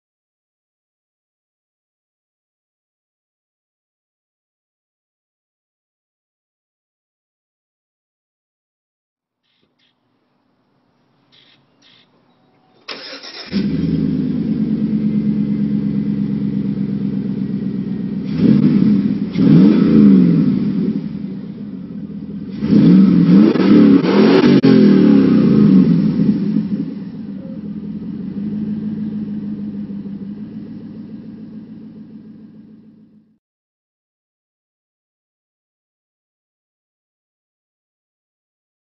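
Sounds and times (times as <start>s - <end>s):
engine idling and revving: 12.9s - 33.4s.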